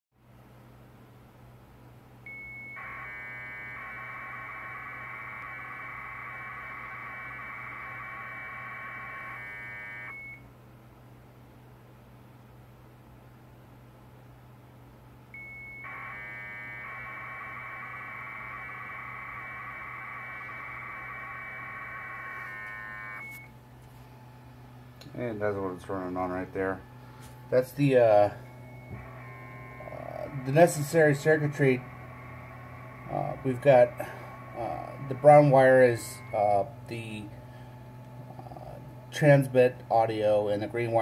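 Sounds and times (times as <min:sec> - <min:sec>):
low steady hum: 0:00.3 - 0:41.0
rapid chirping modem tones: 0:02.3 - 0:10.4, 0:15.4 - 0:23.5, 0:26.9 - 0:39.1
steady high tone: 0:02.3 - 0:10.4, 0:15.4 - 0:23.5, 0:27.5 - 0:38.8.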